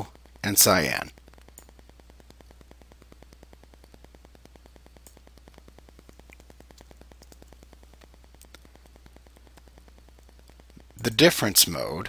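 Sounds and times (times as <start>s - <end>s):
low electrical hum: 0.0s - 12.0s
rapid electrical ticking: 0.0s - 12.0s.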